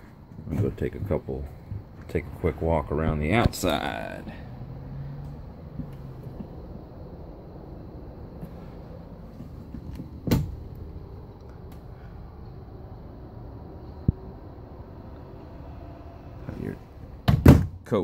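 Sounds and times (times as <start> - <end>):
low rumble: 0.9 - 17.3
door thump: 10.2 - 10.6, 17.2 - 17.8.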